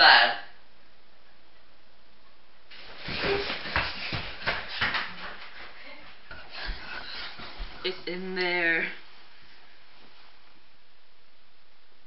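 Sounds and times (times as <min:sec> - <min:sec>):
clothing rustling: 0:02.7 - 0:05.8, 0:09.0 - 0:10.6
hurried footsteps: 0:02.7 - 0:08.1.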